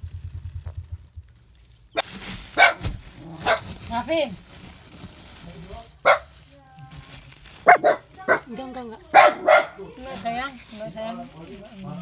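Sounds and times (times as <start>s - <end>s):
rustling: 0.0s - 12.0s
dog barking: 2.0s - 3.7s, 6.0s - 6.4s, 7.6s - 10.0s.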